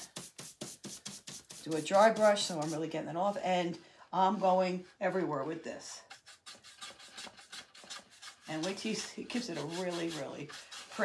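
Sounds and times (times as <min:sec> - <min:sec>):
paintbrush scratching on wood: 0:00.0 - 0:03.6, 0:04.3 - 0:11.0.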